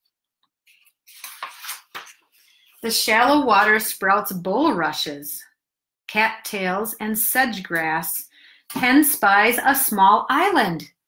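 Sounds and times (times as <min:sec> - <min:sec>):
paper page turning: 0:00.6 - 0:02.7.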